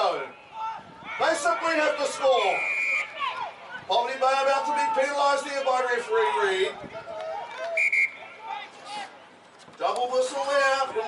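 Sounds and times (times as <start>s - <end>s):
faint players' voices: 0.0s - 11.0s
referee's whistle blasts: 2.4s - 3.2s, 7.7s - 8.3s.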